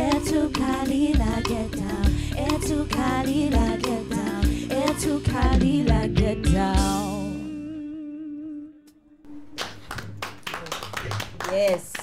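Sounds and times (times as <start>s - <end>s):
people clapping: 9.4s - 12.0s.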